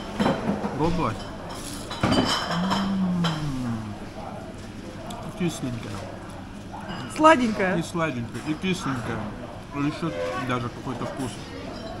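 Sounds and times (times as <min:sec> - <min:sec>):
man humming mmm: 0:02.5 - 0:04.2.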